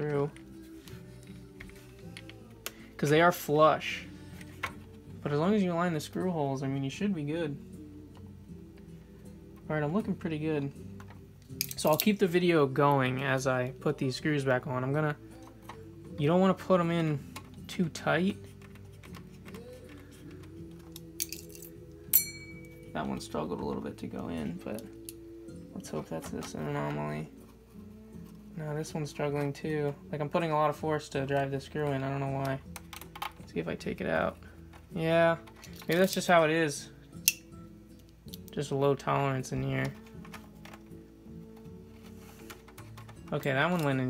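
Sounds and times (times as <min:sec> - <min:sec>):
background music low tones: 0:00.0 - 0:44.0.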